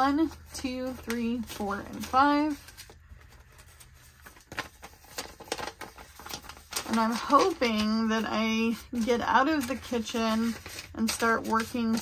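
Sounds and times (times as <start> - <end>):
paper money and envelope rustling: 0.0 - 12.0.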